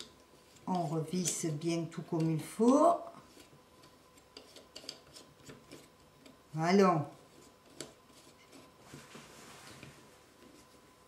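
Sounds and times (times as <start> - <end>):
soft rubbing and scraping: 0.0 - 2.4, 3.0 - 6.1, 7.1 - 11.0.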